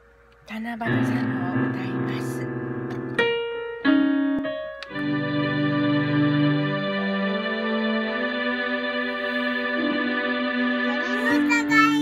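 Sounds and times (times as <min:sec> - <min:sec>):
piano single notes: 0:00.8 - 0:07.7.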